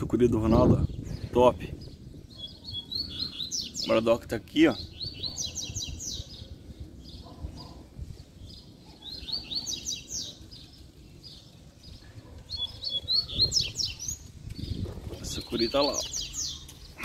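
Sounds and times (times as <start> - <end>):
birds singing rapid high notes: 0.0 - 17.0.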